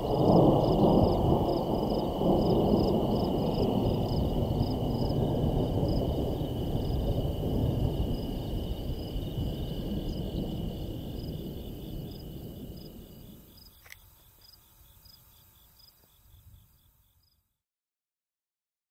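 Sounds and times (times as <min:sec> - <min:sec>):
insects chirping: 0:00.0 - 0:17.6
sharp click: 0:13.8 - 0:14.1.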